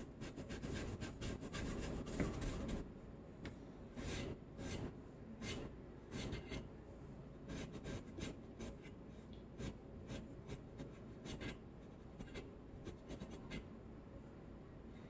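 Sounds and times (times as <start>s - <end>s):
scratchy strokes on a surface: 0.2s - 2.8s, 4.0s - 6.7s, 9.6s - 13.6s.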